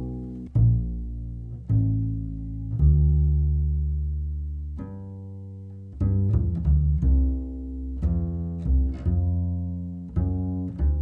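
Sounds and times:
double bass low notes: 0.0 - 11.0.

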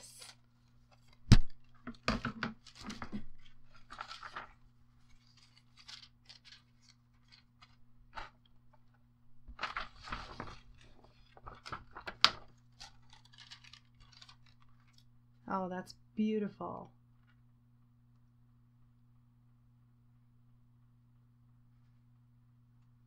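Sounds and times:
foil and paper crinkling: 0.0 - 15.1
faint low hum: 0.0 - 23.0
foil peeled off paper tag: 2.6 - 8.4, 9.6 - 15.0.

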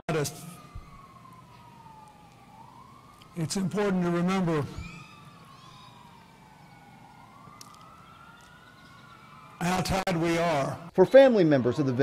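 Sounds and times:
faint emergency siren wailing: 0.1 - 12.0.

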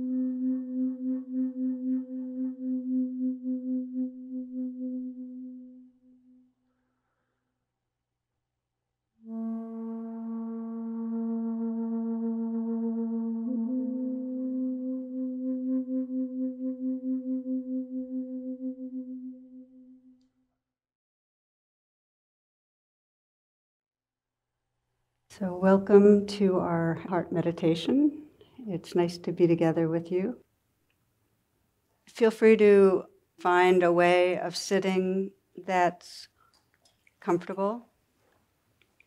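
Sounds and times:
flute low note with vibrato: 0.0 - 6.5, 9.2 - 20.2.

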